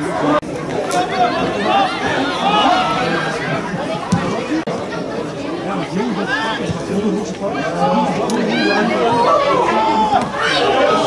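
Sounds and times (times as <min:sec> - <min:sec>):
spectators chattering and calling: 0:00.0 - 0:11.0.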